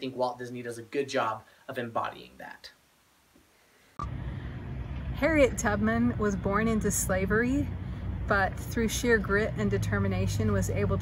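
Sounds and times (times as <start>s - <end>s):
low outdoor rumble: 4.0s - 11.0s.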